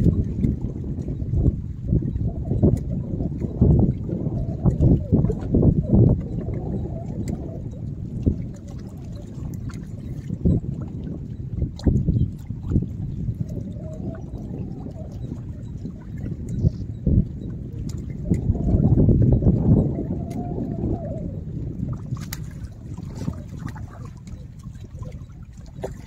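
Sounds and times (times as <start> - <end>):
water lapping against rocks: 0.0 - 26.0
wind rumbling on microphone: 0.0 - 26.0
small splashes: 22.0 - 26.0.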